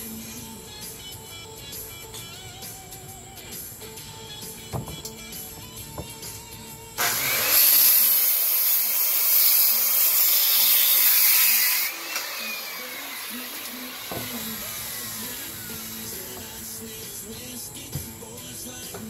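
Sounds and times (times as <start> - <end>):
circular saw cutting wood: 4.4 - 18.1
saw blade whine coasting down: 6.1 - 19.0.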